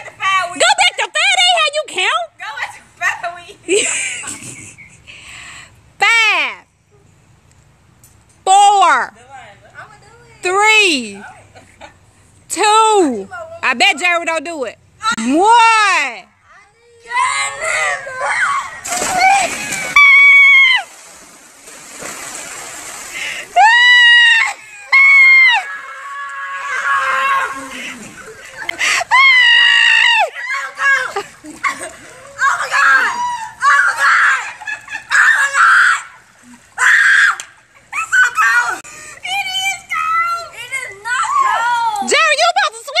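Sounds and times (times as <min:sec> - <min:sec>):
shouts and laughter: 0:16.9 - 0:20.9, 0:23.6 - 0:43.0
girls screaming: 0:17.1 - 0:20.9, 0:23.6 - 0:27.9, 0:29.0 - 0:31.3, 0:32.1 - 0:36.2, 0:36.8 - 0:38.8, 0:41.2 - 0:42.1
splash into pool: 0:18.6 - 0:23.8.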